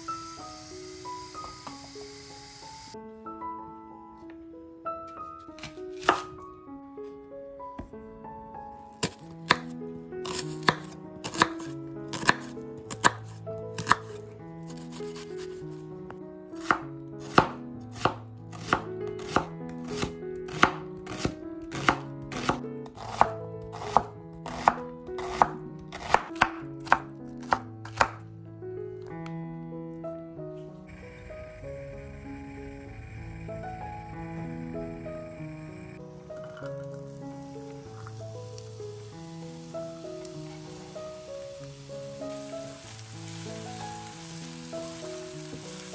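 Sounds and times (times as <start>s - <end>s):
soft background music: 0.0s - 45.9s
knife chopping on cutting board: 5.6s - 6.3s, 9.0s - 9.7s, 10.3s - 15.3s, 16.6s - 28.2s.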